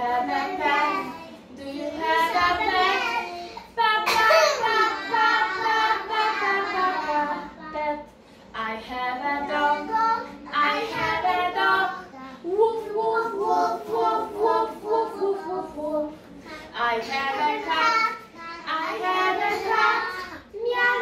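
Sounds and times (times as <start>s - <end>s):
young children singing: 0.0s - 8.1s, 9.0s - 21.0s.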